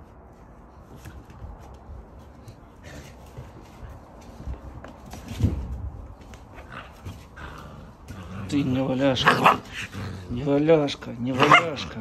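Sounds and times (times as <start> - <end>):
puppy paws pattering on wood: 0.0 - 12.0.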